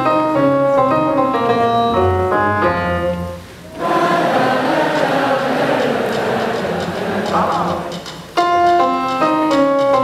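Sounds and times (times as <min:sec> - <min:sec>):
piano phrase: 0:00.0 - 0:10.0
crowd singing in unison: 0:03.7 - 0:08.1.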